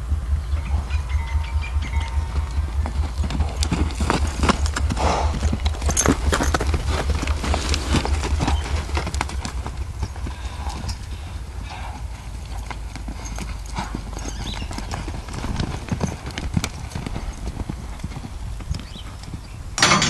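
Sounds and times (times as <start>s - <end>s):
wind on microphone: 0.0s - 12.4s, 14.4s - 19.8s
horse hoofbeats on dirt: 0.0s - 20.0s.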